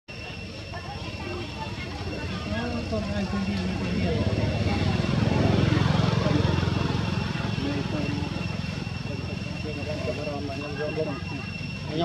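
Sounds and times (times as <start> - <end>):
faint high whine: 0.1 - 12.0
vehicle engine rumble: 2.0 - 12.0.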